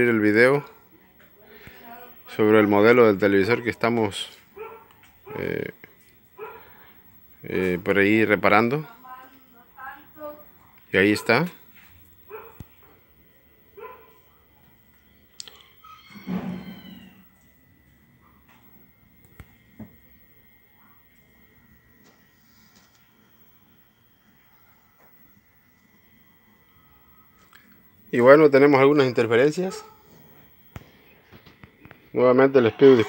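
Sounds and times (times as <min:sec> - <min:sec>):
animal call: 0:15.4 - 0:17.4.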